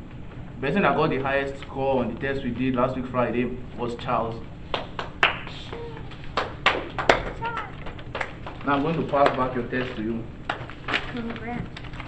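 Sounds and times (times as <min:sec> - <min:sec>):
hand claps: 0:04.7 - 0:08.6, 0:09.2 - 0:09.5.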